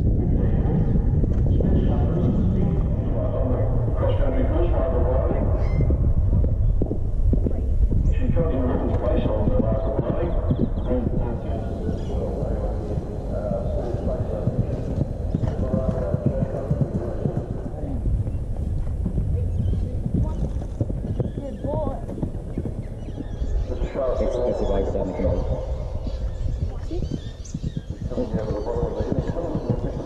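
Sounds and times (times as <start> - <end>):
horse hoofbeats on turf: 5.0 - 24.0, 26.0 - 30.0
person's voice: 23.7 - 25.6, 28.1 - 30.0.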